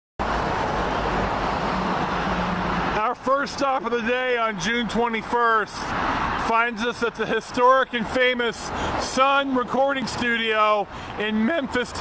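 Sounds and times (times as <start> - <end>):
passing cars: 0.2 - 12.0.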